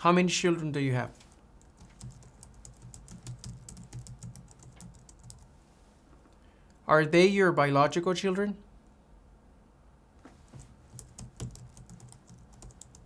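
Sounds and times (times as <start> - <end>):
typing on computer keyboard: 1.6 - 5.5, 10.9 - 13.0.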